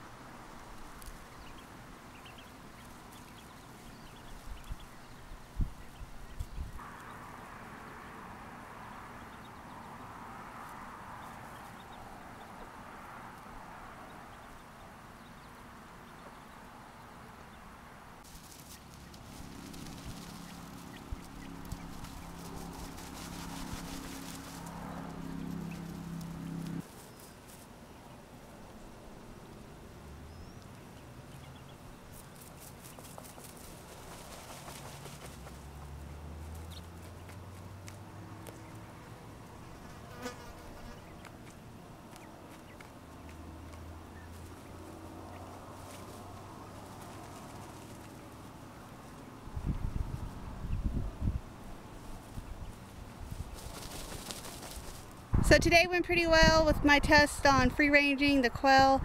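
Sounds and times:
flying insect buzzing: 18.3s - 26.9s, 39.6s - 41.1s.

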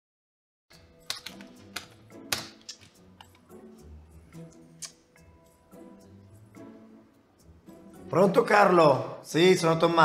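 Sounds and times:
background music: 0.7s - 10.0s.

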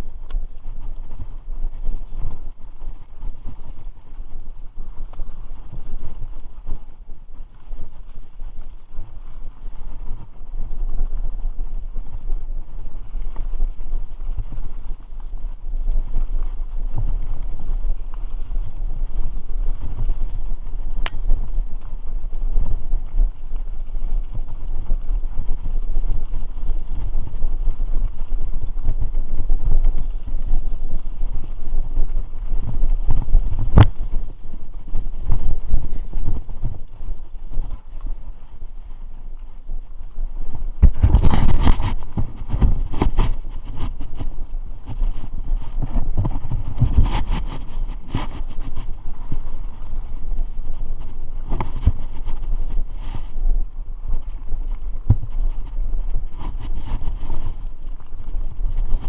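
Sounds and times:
bike clicking and rattling: 0.0s - 59.0s
tyres rumbling on dirt trail: 0.0s - 59.0s
wind buffeting microphone: 0.0s - 59.0s.

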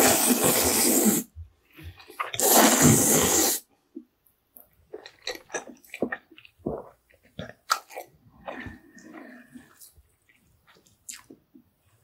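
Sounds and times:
person slurping noodles: 0.0s - 1.3s, 2.2s - 3.6s
wet mouth clicks and smacks: 10.7s - 11.4s.

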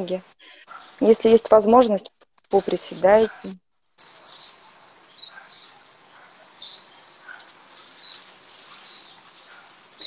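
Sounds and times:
birds chirping: 0.0s - 10.0s
faint steady hiss: 0.0s - 10.0s.

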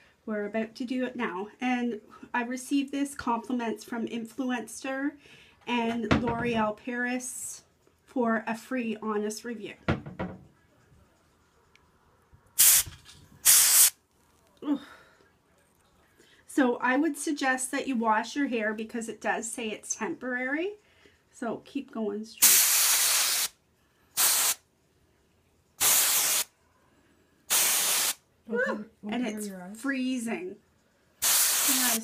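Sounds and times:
aerosol spray hissing: 12.6s - 14.0s, 22.4s - 23.6s, 24.2s - 24.6s, 25.8s - 26.5s, 27.5s - 28.2s, 31.2s - 32.0s.

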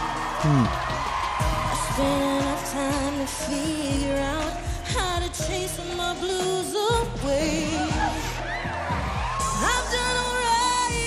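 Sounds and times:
backing music: 0.0s - 11.0s
woman singing pop song: 1.2s - 11.0s.

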